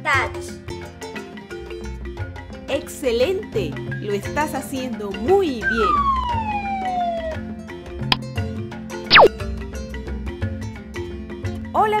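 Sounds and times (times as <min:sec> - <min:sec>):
light background music: 0:00.0 - 0:12.0
descending cartoon whistle: 0:05.7 - 0:07.4, 0:09.1 - 0:09.3.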